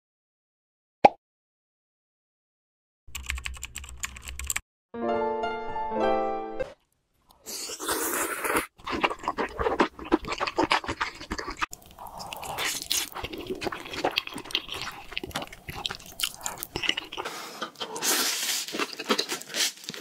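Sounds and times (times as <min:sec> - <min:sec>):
crunchy bites: 0:07.3 - 0:20.0
noodles slurped and chewed: 0:07.3 - 0:20.0.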